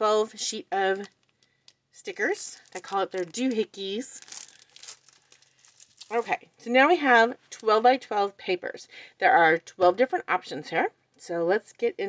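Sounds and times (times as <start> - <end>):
plastic packaging crinkling: 0.8 - 6.7.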